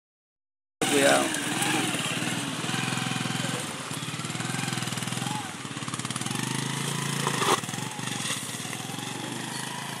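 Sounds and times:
small motorcycle engine passing: 0.8s - 10.0s.

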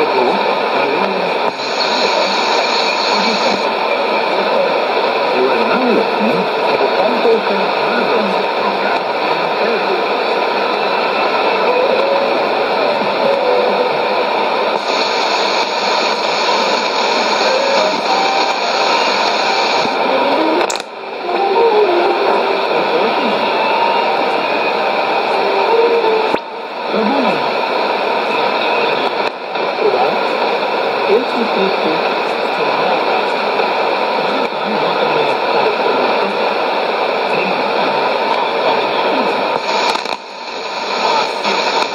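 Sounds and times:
faint voice on radio: 0.0s - 41.9s
radio hiss and static: 0.0s - 41.9s.

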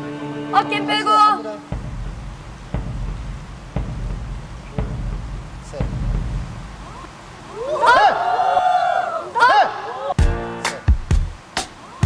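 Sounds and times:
slow suspense thumps: 1.7s - 7.4s
low rumble: 1.7s - 7.5s
voices crying out together: 6.8s - 10.2s.

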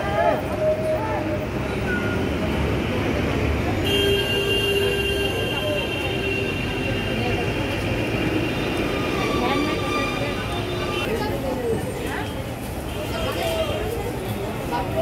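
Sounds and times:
traffic rumble: 0.0s - 15.0s.

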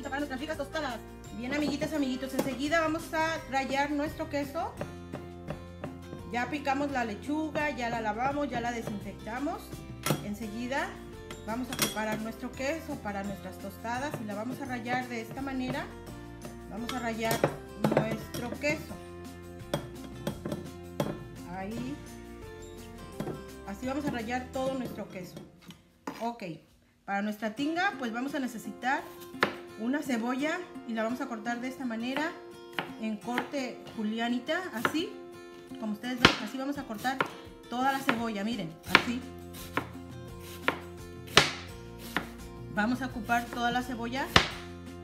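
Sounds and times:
background music: 0.0s - 26.6s, 27.3s - 45.0s
knife chopping on cutting board: 4.8s - 6.1s, 19.7s - 21.3s, 23.2s - 25.5s, 29.1s - 29.6s, 36.2s - 38.2s, 38.9s - 42.4s, 43.4s - 44.7s.

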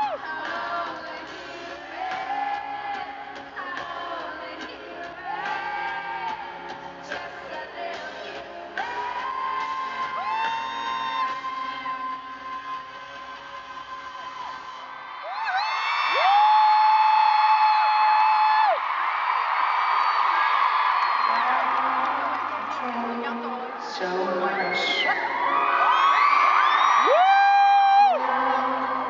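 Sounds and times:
crowd cheering and whooping: 0.0s - 0.9s, 8.8s - 29.0s
woman singing: 0.0s - 14.8s, 21.3s - 25.3s, 28.1s - 29.0s.

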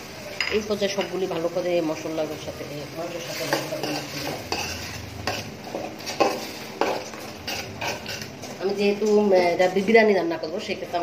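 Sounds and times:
metal spoon scraping pot: 3.2s - 8.6s.

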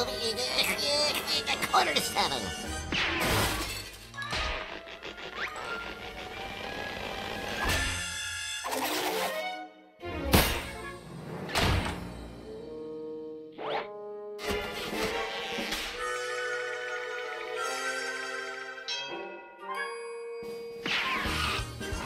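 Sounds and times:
cartoon music: 0.0s - 2.9s.

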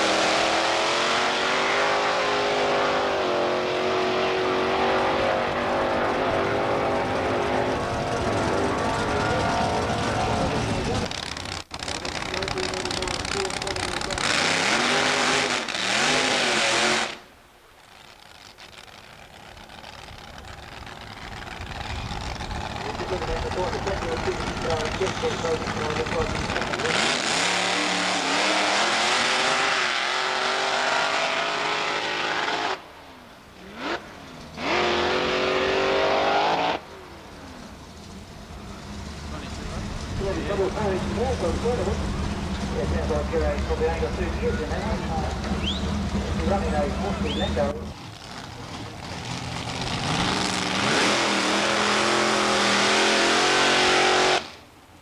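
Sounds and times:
cars racing at full throttle: 0.0s - 17.2s, 18.8s - 54.7s.

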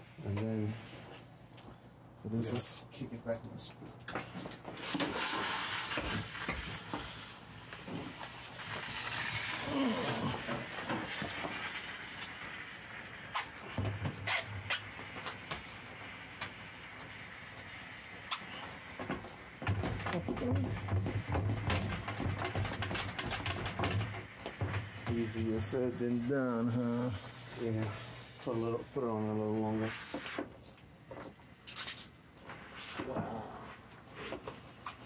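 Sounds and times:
steam mop hissing: 4.2s - 31.0s, 31.6s - 35.0s.

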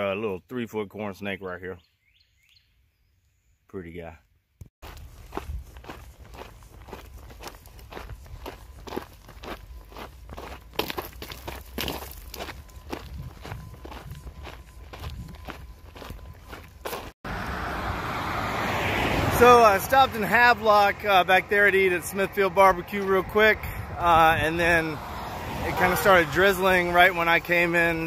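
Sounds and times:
footsteps on gravel: 4.8s - 17.2s.

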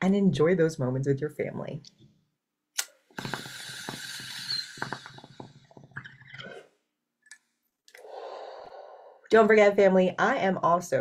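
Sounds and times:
water bong bubbling: 3.2s - 6.7s.

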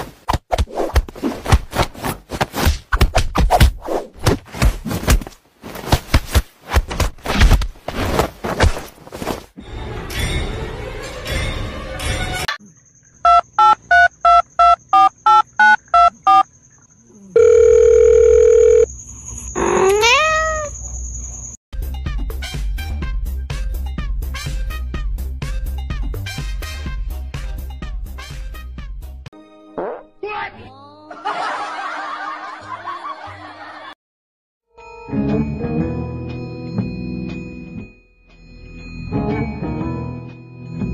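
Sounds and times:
telephone keypad beeps: 13.3s - 16.4s
long steady phone tone: 17.4s - 18.9s
cat meowing: 19.6s - 20.8s
people laughing: 31.1s - 34.0s
background music: 34.8s - 40.9s.

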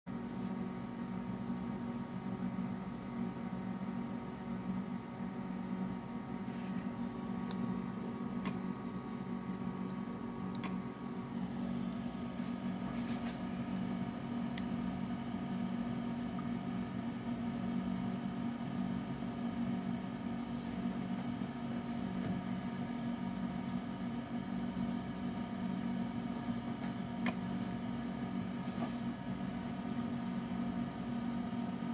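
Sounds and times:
low mechanical hum: 0.1s - 31.9s
cooling fan hiss: 0.2s - 31.9s.

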